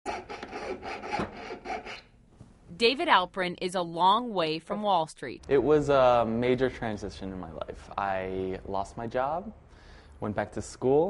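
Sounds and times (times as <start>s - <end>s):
piercing saw strokes: 0.0s - 2.1s.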